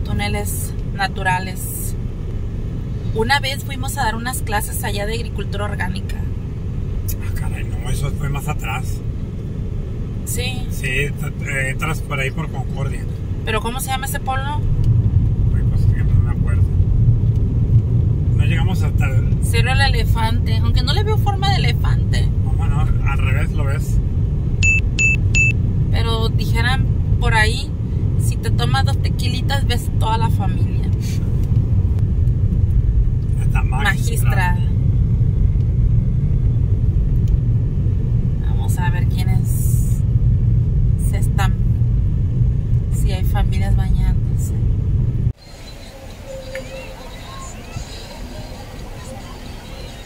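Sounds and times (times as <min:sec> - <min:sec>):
car engine and road rumble: 0:00.0 - 0:50.0
short electronic beeps: 0:24.6 - 0:25.6.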